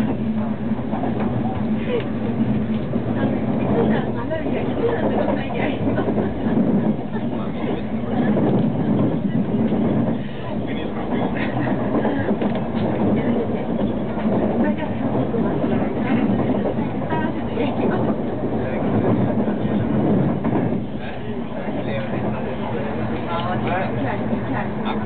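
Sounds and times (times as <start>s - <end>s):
passengers talking: 0.0s - 25.0s
train rumbling on track: 0.0s - 25.0s.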